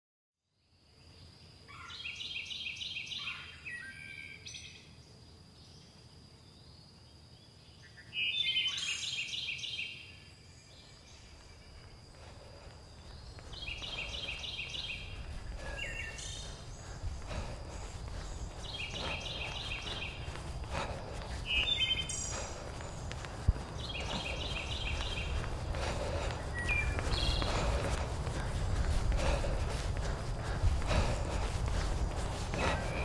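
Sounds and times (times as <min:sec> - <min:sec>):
songbird singing: 0:00.5 - 0:33.0
low outdoor rumble: 0:12.2 - 0:33.0.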